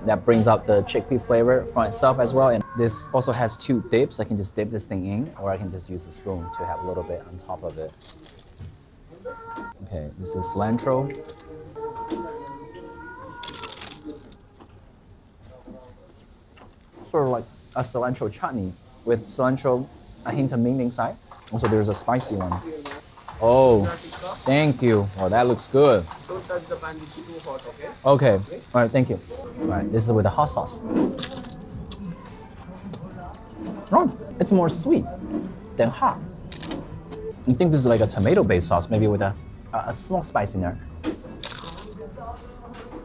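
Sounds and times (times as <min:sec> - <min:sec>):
crisp papadam crunch: 0:13.4 - 0:14.4, 0:31.2 - 0:32.0, 0:36.5 - 0:36.8, 0:41.4 - 0:42.5
chewing: 0:41.4 - 0:42.5.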